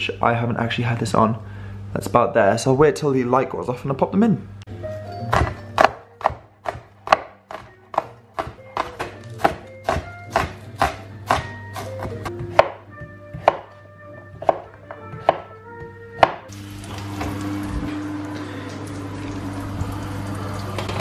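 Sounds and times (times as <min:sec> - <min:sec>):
background music: 0:04.7 - 0:16.8
knife chopping on wooden board: 0:05.3 - 0:16.5.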